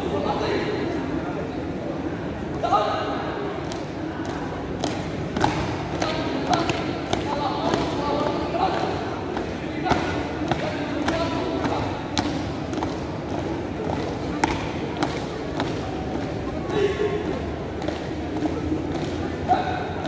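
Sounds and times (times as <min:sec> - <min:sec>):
murmur of crowd voices: 0:00.0 - 0:20.0.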